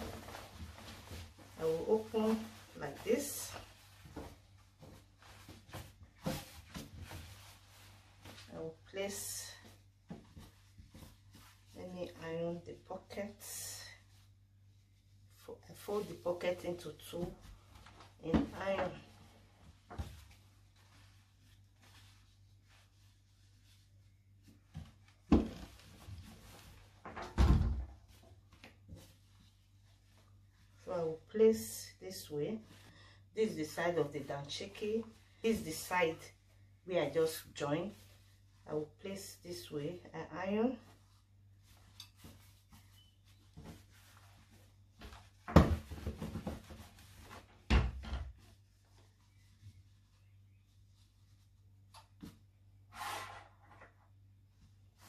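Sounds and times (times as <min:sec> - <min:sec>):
fabric rustling: 0:00.0 - 0:27.1, 0:27.9 - 0:47.7.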